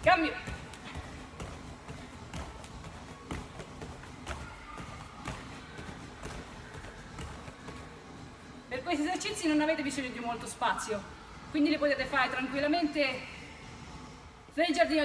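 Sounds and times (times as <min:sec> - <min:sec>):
bare feet tapping on mats: 0:00.0 - 0:08.7.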